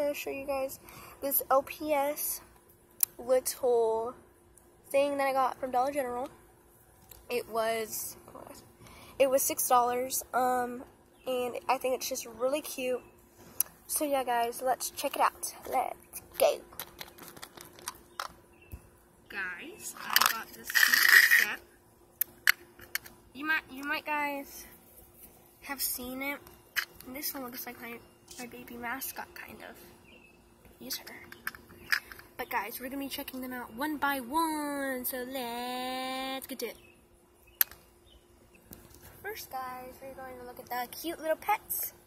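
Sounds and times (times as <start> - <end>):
plastic toy tapping on concrete: 20.0 - 21.5.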